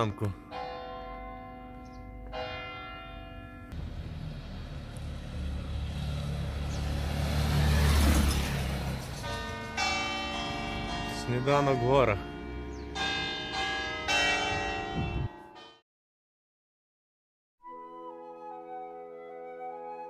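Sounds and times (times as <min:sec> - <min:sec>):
church bells ringing: 0:00.0 - 0:03.9, 0:09.1 - 0:15.8
motor scooter passing: 0:03.8 - 0:10.9, 0:12.3 - 0:13.6.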